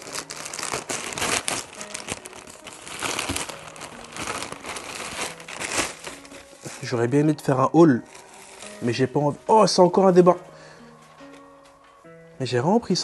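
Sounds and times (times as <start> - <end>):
plastic bag crinkling: 0.0 - 9.1.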